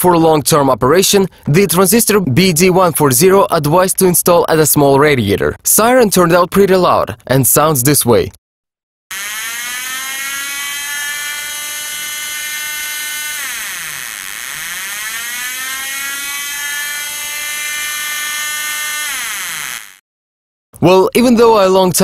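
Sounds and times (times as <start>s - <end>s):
wailing siren through loudspeaker: 9.1s - 20.0s.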